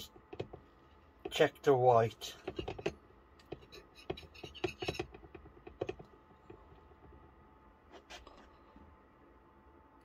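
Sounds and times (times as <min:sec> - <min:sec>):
fork scraping on ceramic plate: 0:03.6 - 0:05.1.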